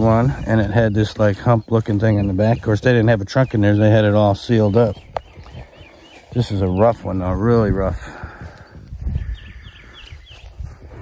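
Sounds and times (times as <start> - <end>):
small bird chirping: 0.0 - 7.4, 8.6 - 10.8
footsteps in grass: 0.0 - 11.0.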